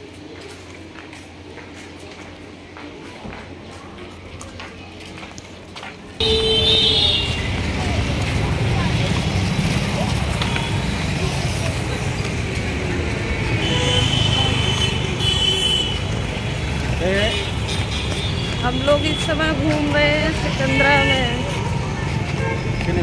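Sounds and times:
traffic rumble: 0:00.0 - 0:23.0
vehicle horns honking: 0:06.2 - 0:07.6, 0:13.5 - 0:16.2, 0:20.6 - 0:22.8.

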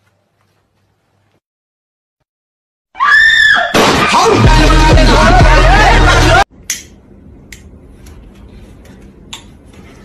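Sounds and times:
high-pitched scream: 0:03.0 - 0:03.8.

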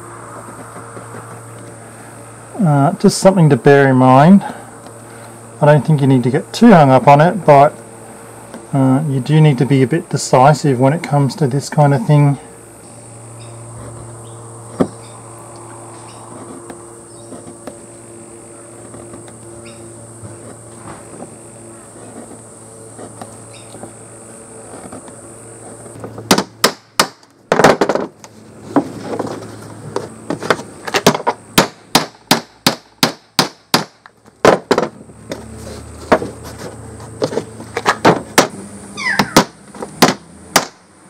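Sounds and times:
high-pitched whine: 0:00.0 - 0:26.1
low hum: 0:00.0 - 0:26.7.

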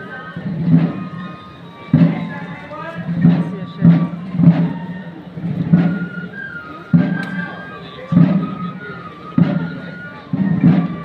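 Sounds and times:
crowd murmur: 0:00.0 - 0:11.0
held wind instrument notes: 0:00.0 - 0:11.0
slow drum beat: 0:00.4 - 0:02.4, 0:03.0 - 0:07.5, 0:08.1 - 0:11.0.

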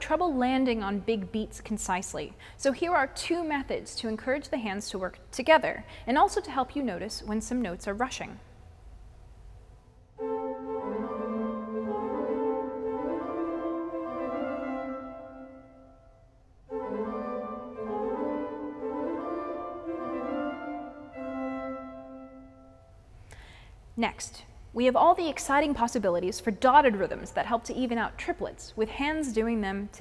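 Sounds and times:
pipe organ playing: 0:10.2 - 0:15.8, 0:16.7 - 0:22.7.

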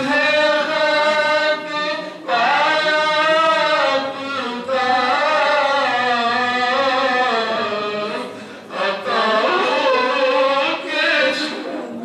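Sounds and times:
man singing devotional song: 0:00.0 - 0:11.6.

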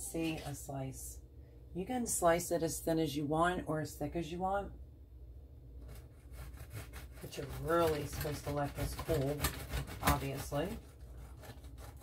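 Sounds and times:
knife sawing bread crust: 0:05.8 - 0:12.0.

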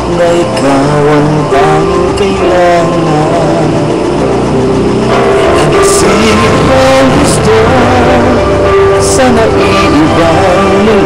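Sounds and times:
person singing along: 0:00.0 - 0:04.3, 0:05.1 - 0:11.0
pop ballad playing loudly: 0:00.0 - 0:11.0.

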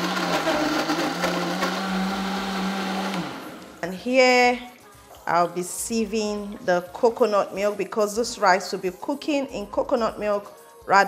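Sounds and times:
blender running: 0:00.0 - 0:03.8.

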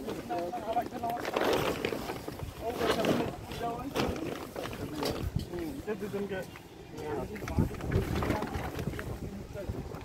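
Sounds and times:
wind buffeting microphone: 0:07.0 - 0:10.0.

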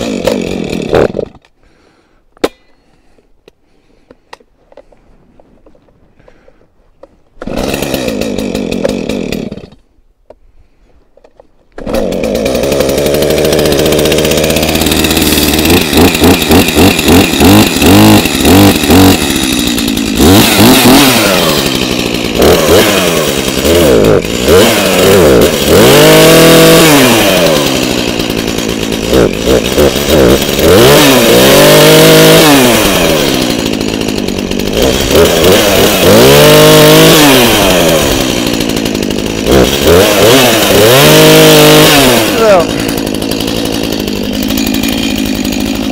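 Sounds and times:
chainsaw cutting log: 0:00.0 - 0:02.7, 0:06.2 - 0:10.4, 0:11.1 - 0:45.9.

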